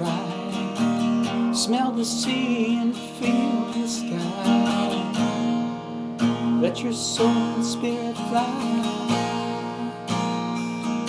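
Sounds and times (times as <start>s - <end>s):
guitar chords strummed and ringing: 0.0s - 11.0s.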